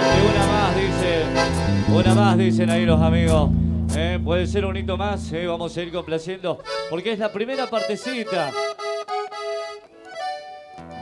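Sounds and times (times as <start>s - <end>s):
accordion chords: 0.0s - 11.0s.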